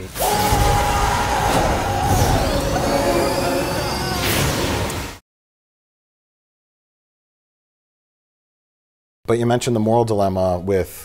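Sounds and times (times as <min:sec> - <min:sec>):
sustained falling tone: 0:01.5 - 0:05.2.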